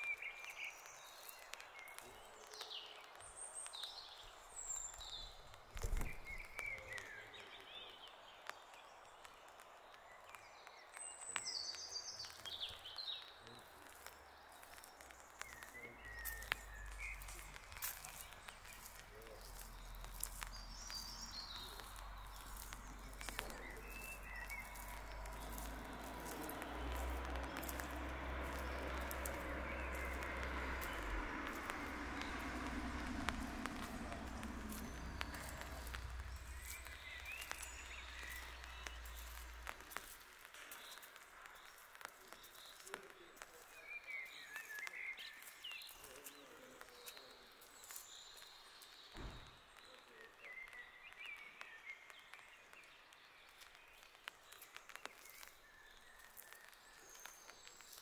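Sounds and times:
footsteps on pavement: 0.0 - 49.9
birds chirping: 0.0 - 58.0
low rumble: 15.8 - 40.1
broad rushing noise: 16.0 - 40.4.

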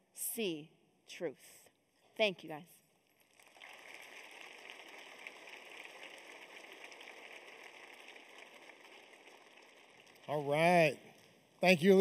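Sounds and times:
faint audience applause: 3.4 - 11.0.

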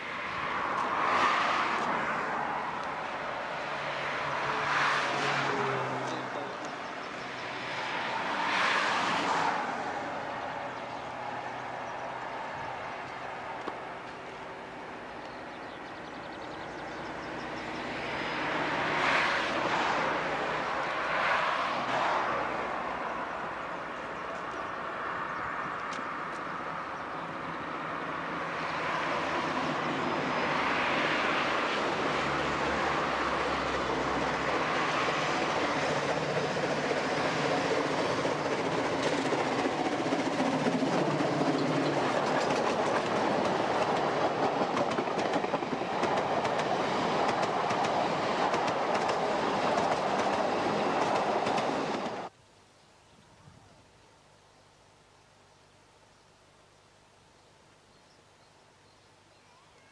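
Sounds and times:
steam train passing: 0.0 - 52.3
wheels clicking over rails: 33.7 - 52.3.

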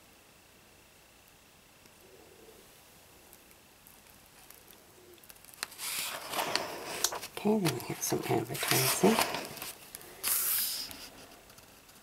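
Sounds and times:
paper rustling and crackling: 5.3 - 12.0.

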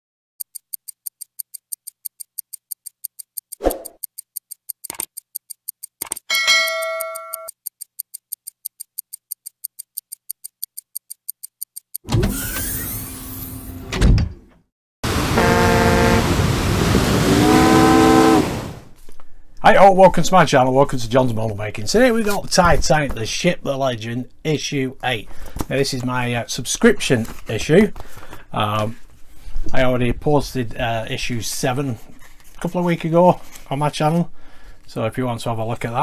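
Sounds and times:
clock ticking fast: 0.4 - 12.1
chime: 6.3 - 7.5
horn-like tone: 15.1 - 16.5, 17.3 - 18.8.

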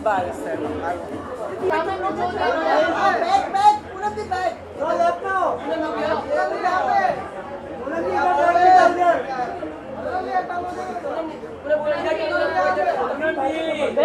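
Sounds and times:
overlapping chatter of voices: 0.0 - 14.0.

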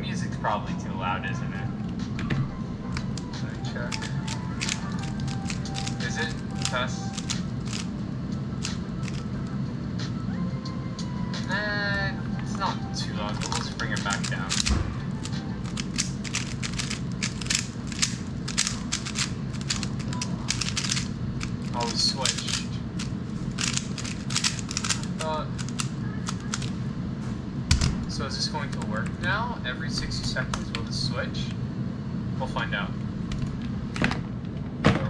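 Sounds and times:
background music: 0.0 - 25.3
plastic puzzle cube clicking: 3.9 - 7.9, 8.6 - 9.2, 13.4 - 22.6, 23.6 - 26.7.

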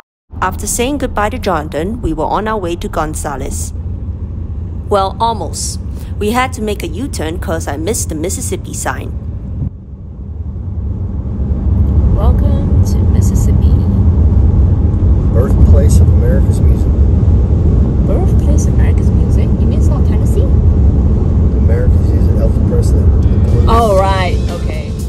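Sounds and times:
car road and wind rumble: 0.3 - 25.0.

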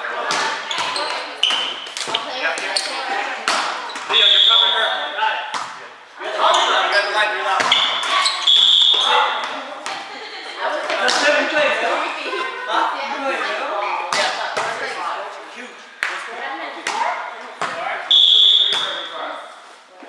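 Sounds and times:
players calling out: 0.0 - 15.1, 15.8 - 19.5
sneakers squeaking on court: 0.6 - 3.1, 6.5 - 9.5
volleyball smacks: 3.4 - 4.2, 5.5 - 5.8, 14.1 - 14.8, 18.6 - 19.0.

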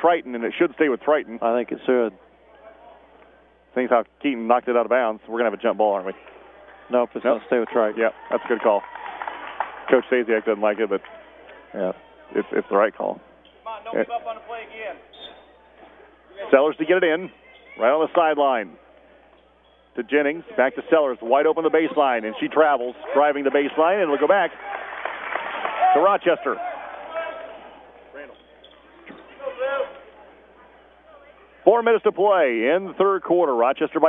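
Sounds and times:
gym background noise: 0.0 - 34.0.

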